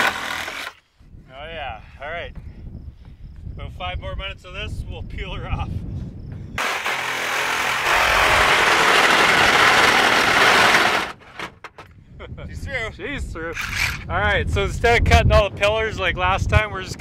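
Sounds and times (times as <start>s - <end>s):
reciprocating saw cutting metal: 0.0s - 0.8s, 6.6s - 11.5s.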